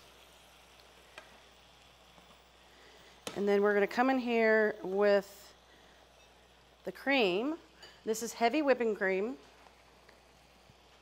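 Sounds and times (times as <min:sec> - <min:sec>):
food sizzling in frying pans: 0:00.0 - 0:11.0.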